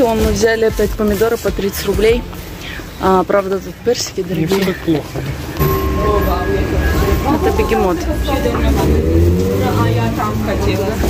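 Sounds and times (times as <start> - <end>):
indistinct talking: 3.8 - 11.0
steady low rumble: 5.5 - 9.3.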